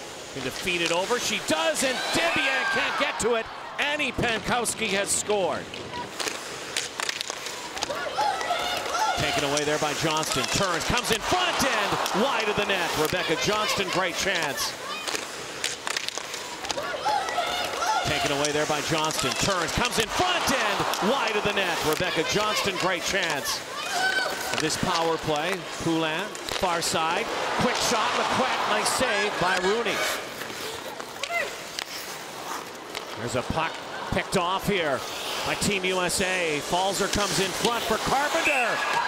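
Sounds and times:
skates scraping on ice: 0:00.0 - 0:03.1, 0:04.4 - 0:39.0
hockey sticks and puck clacking: 0:00.2 - 0:02.9, 0:04.2 - 0:39.0
crowd hiss: 0:06.1 - 0:30.9, 0:34.8 - 0:39.0.

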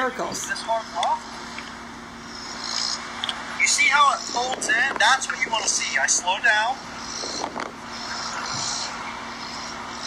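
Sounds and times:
faint hum of distant traffic: 0:00.0 - 0:10.0.

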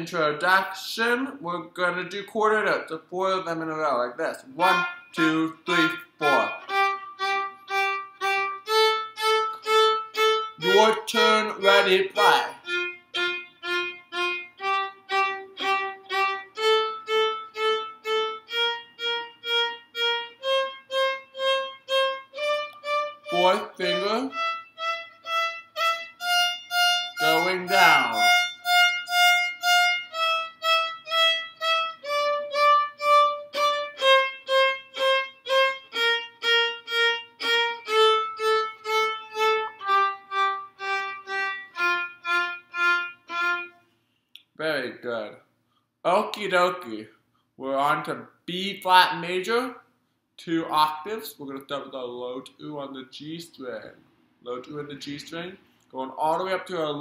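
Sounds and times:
person speaking cues: 0:03.1 - 0:06.7, 0:10.6 - 0:12.6, 0:23.3 - 0:24.4, 0:27.2 - 0:28.3, 0:50.4 - 0:53.9, 0:54.5 - 0:57.0
violin playing a scale: 0:04.6 - 0:43.8.

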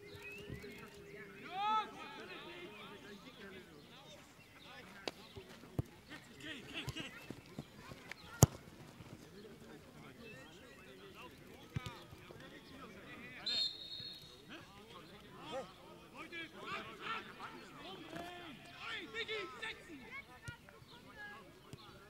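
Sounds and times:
ball kicks: 0:08.3 - 0:08.7.

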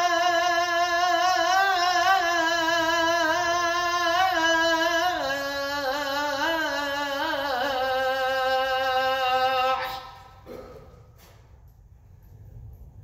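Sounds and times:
man chanting call to prayer: 0:00.0 - 0:10.6
echo in a hall: 0:00.0 - 0:13.0.

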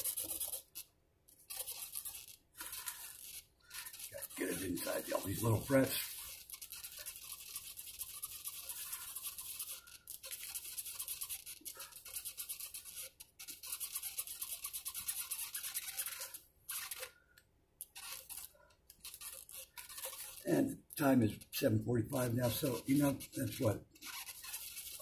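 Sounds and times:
cloth rag rubbing mandolin frets: 0:01.5 - 0:11.9, 0:18.0 - 0:25.0.

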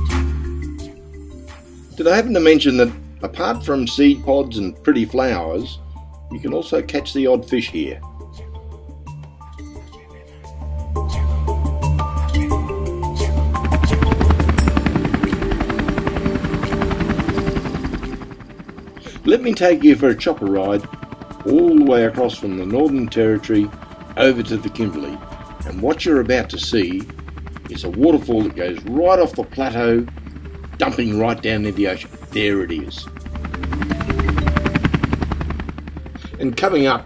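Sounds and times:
helicopter rotor beating: 0:00.0 - 0:37.0
low engine rumble: 0:13.2 - 0:37.0.

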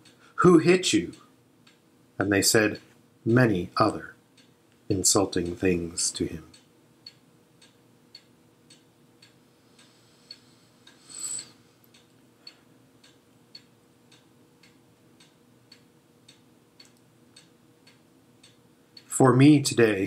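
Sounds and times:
clock ticking: 0:00.0 - 0:00.2, 0:00.8 - 0:01.8, 0:03.6 - 0:11.0, 0:11.9 - 0:19.7
short rustling hiss: 0:09.5 - 0:11.8.

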